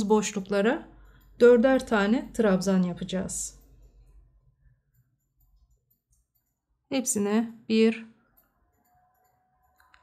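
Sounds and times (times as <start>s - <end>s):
woman's voice: 0.0s - 3.6s, 6.9s - 8.2s.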